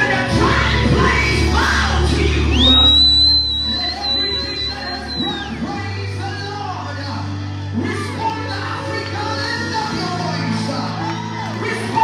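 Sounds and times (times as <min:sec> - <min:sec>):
man singing into microphone: 0:00.0 - 0:07.2
live gospel band music: 0:00.0 - 0:12.0
low bass and keyboard notes: 0:00.0 - 0:12.0.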